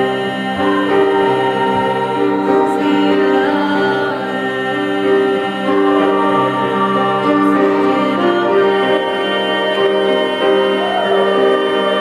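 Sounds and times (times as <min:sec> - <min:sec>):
women's choir singing: 0:00.0 - 0:12.0.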